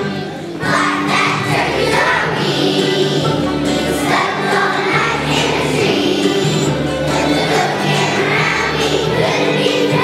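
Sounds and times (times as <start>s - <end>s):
children's choir singing: 0.0s - 10.0s
instrumental accompaniment: 0.0s - 10.0s.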